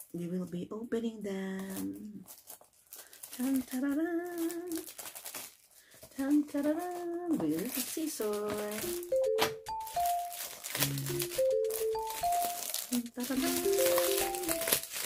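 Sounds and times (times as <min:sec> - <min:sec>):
cellophane crinkling: 0:00.0 - 0:00.6, 0:01.4 - 0:15.0
woman singing: 0:03.4 - 0:04.8, 0:06.2 - 0:08.8, 0:13.0 - 0:14.5.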